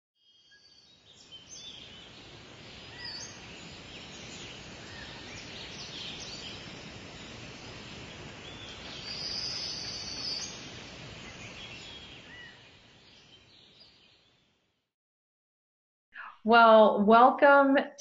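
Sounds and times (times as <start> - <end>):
steady background hiss: 0.6 - 14.2
birds chirping and calling: 1.2 - 14.0.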